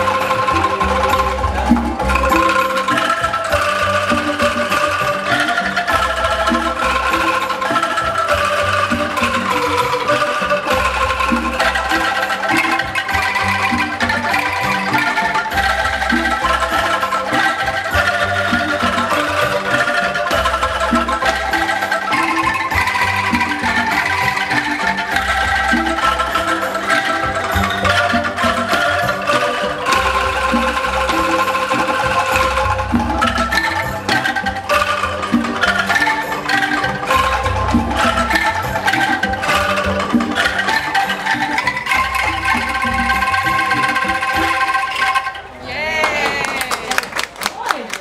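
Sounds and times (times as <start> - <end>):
bamboo angklung ensemble melody: 0.0 - 48.0.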